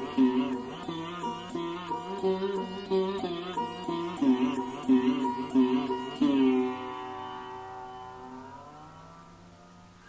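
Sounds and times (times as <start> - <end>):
sarod note sliding upward: 0.0 - 10.0.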